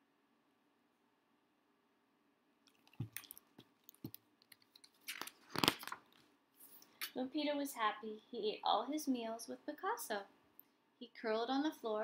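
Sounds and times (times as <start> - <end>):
paper page rustling: 2.7 - 6.3.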